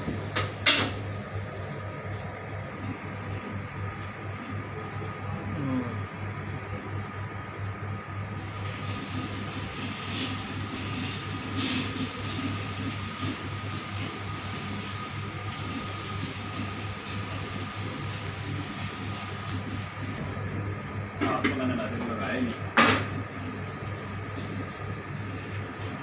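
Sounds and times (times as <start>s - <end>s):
mechanical hum with rushing noise: 0.0s - 26.0s.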